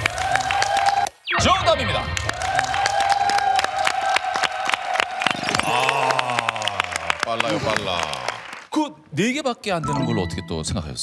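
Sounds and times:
audience applauding: 0.0 - 1.2, 2.1 - 8.8.

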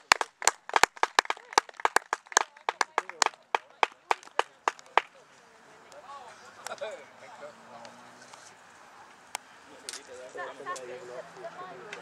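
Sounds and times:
spectators clapping: 0.0 - 5.2.

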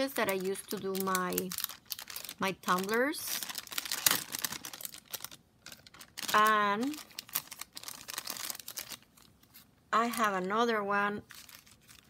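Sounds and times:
plastic packaging crinkling: 0.0 - 10.4, 11.2 - 12.0.

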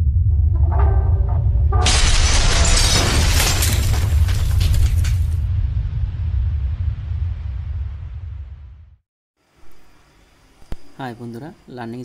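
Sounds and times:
deep low rumble: 0.0 - 9.0
glass shattering: 1.8 - 5.4.

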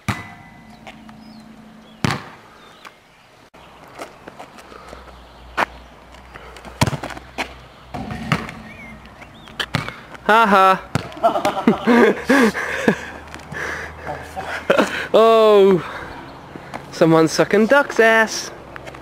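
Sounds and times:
football thudding on asphalt: 0.0 - 1.2, 2.0 - 2.4, 6.8 - 7.2, 7.9 - 10.3, 10.9 - 11.2.

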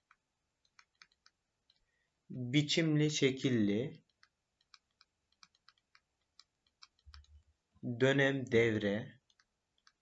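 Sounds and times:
faint irregular clicks: 0.0 - 2.3, 3.4 - 7.8, 9.0 - 10.0.

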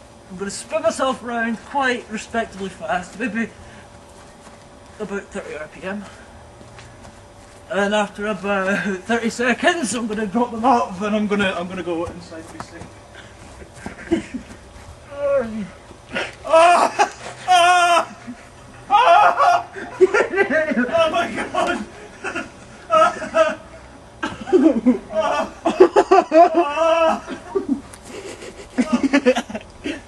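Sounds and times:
people laughing: 13.5 - 14.6, 16.5 - 30.0.

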